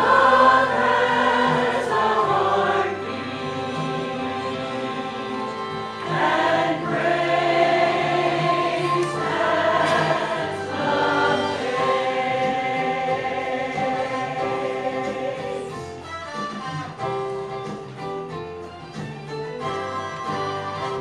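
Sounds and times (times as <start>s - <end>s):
mixed choir singing: 0.0s - 16.1s.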